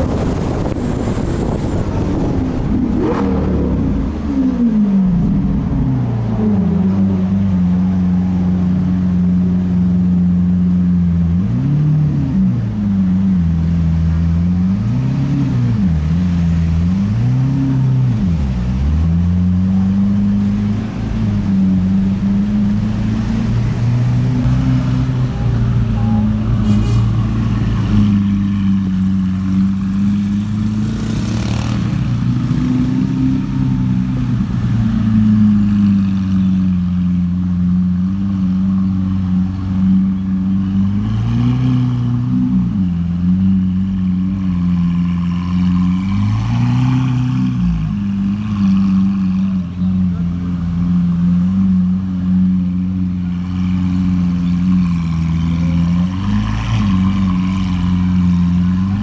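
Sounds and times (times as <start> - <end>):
engine throttle blips: 17.8 - 44.8.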